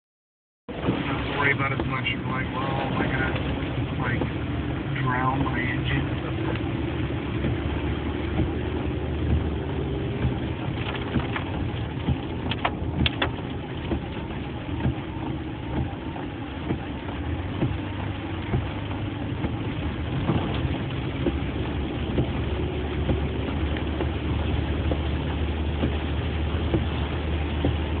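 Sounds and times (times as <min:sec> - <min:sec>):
car engine running: 0:00.7 - 0:28.0
road noise on wet street: 0:00.7 - 0:28.0.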